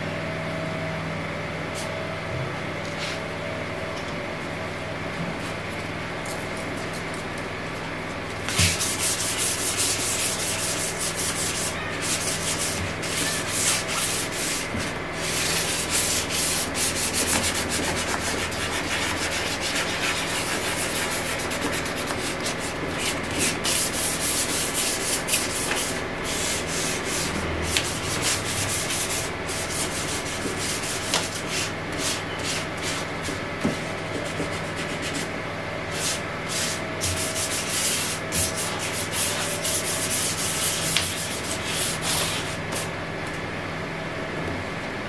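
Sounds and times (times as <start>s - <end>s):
sandpaper rubbing by hand: 8.6s - 27.3s, 35.9s - 42.9s.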